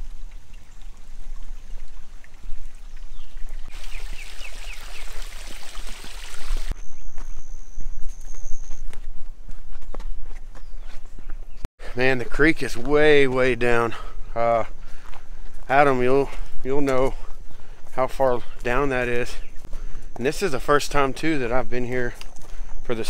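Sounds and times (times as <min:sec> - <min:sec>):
footsteps crunching on trail: 0:00.7 - 0:23.0.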